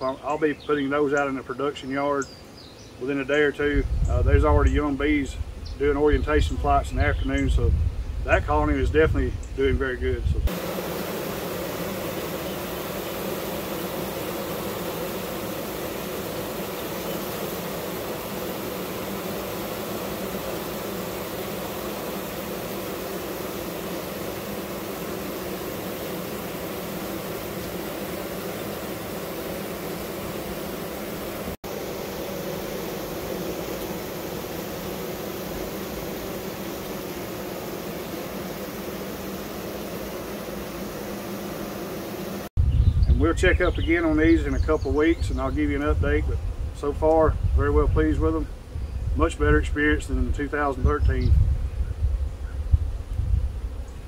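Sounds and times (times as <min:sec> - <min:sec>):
honeybee colony humming: 0:00.0 - 0:54.0.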